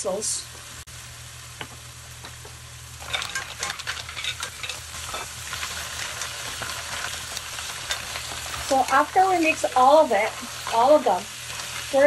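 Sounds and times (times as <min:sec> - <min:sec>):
frying sizzle in a pan: 0:00.0 - 0:12.0
mussel shells clattering: 0:03.0 - 0:10.8
wooden spoon stirring shells: 0:03.0 - 0:12.0.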